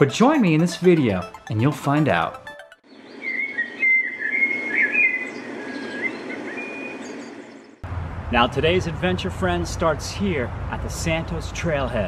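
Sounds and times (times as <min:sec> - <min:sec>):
low rushing noise: 0:07.8 - 0:11.8.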